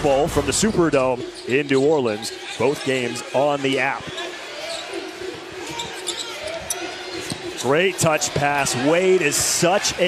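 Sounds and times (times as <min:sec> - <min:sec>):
crowd murmur: 0:00.6 - 0:10.0.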